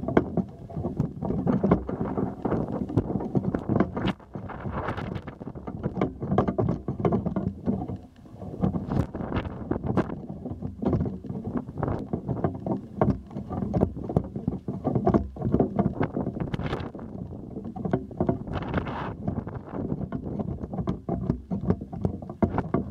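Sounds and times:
handling knocks and rustles: 0.0 - 22.9
wind buffeting microphone: 0.0 - 22.9.

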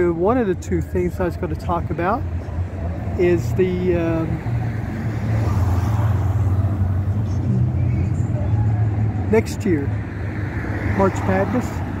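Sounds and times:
car driving past: 4.4 - 9.2.

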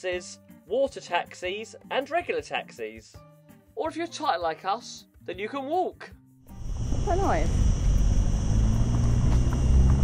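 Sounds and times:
cicadas buzzing: 6.5 - 10.0
low rumble: 6.5 - 10.0.

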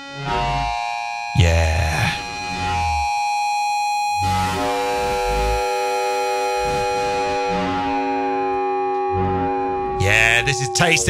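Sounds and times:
electronic drone: 4.2 - 7.9.

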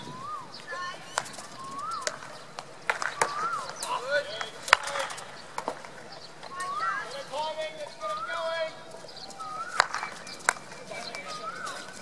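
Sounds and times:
bird whistling call: 0.0 - 12.0
hockey stick striking ball: 2.0 - 6.6, 9.7 - 12.0.

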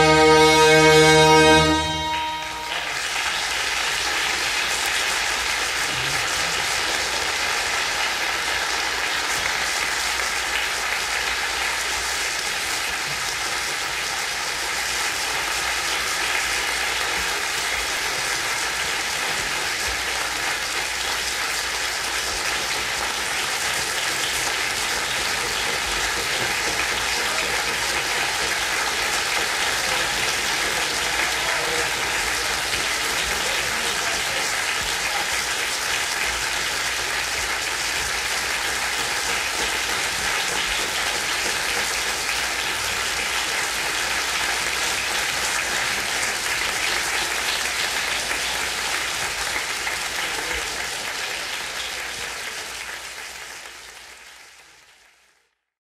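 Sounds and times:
audience applauding: 0.0 - 55.5.

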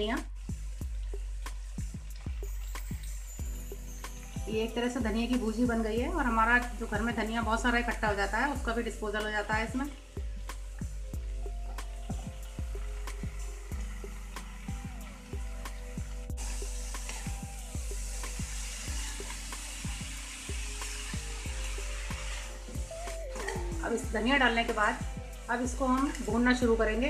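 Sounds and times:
frying hiss: 0.0 - 27.0
soft background music: 0.0 - 27.0.

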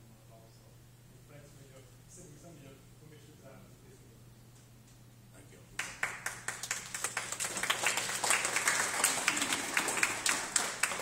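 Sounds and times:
audience applauding: 5.8 - 11.0.

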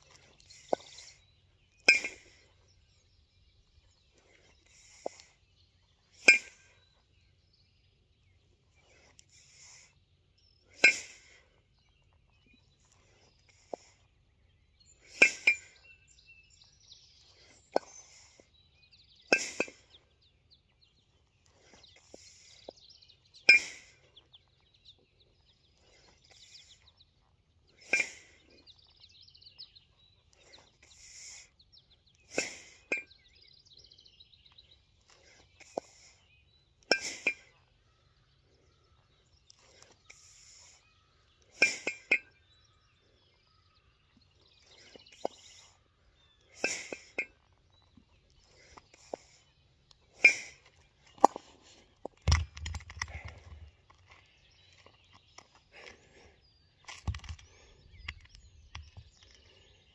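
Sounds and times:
kettlebells clinking together: 41.6 - 42.3.

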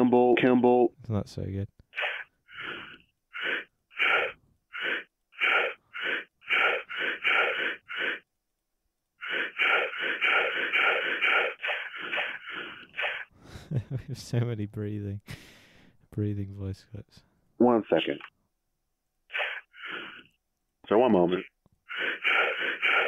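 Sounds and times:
heavy gasping breaths: 2.4 - 3.7, 15.3 - 16.0.

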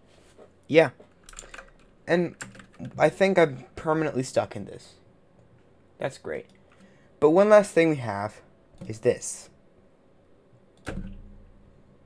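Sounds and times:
computer keyboard keys clicking: 1.2 - 3.0.

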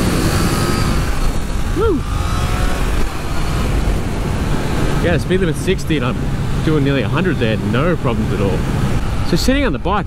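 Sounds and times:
motorcycle engine pulling hard: 0.0 - 9.2
wind rush on microphone: 0.0 - 10.0
rider whooping: 1.6 - 3.0.

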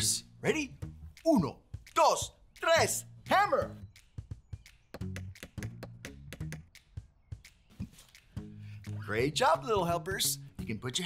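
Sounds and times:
hammer tapping: 4.9 - 6.8.

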